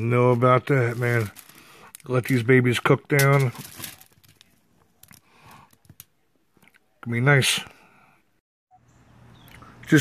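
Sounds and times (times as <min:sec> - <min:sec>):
onion pieces rustling on foil: 0:00.5 - 0:02.4, 0:03.2 - 0:04.5.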